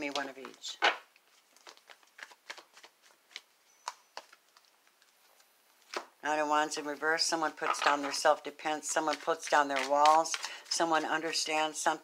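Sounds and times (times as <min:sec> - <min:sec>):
cards snapping and rustling: 0:00.1 - 0:05.2, 0:08.9 - 0:11.6.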